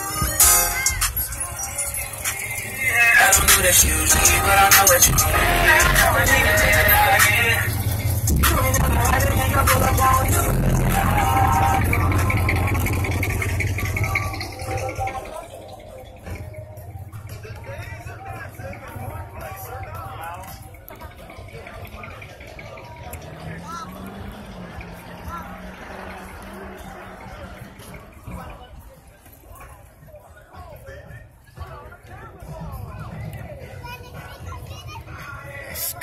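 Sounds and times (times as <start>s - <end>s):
chatter of people: 0.0s - 36.0s
hip hop music with rapping: 0.0s - 36.0s.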